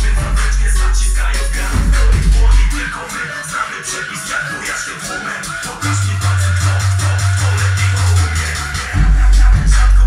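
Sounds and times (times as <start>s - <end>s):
loud electronic music: 0.0s - 10.0s.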